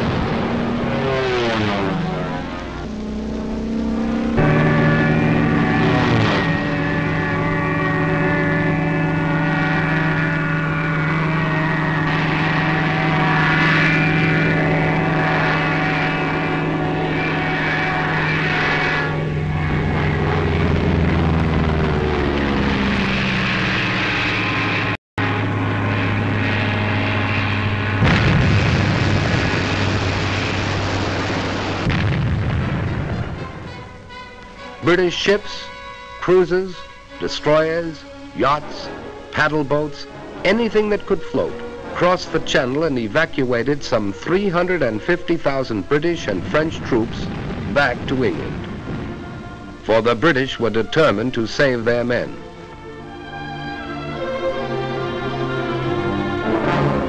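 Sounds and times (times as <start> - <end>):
rough rumble: 0.0 - 35.2, 37.2 - 54.3
propeller aircraft passing: 0.0 - 57.0.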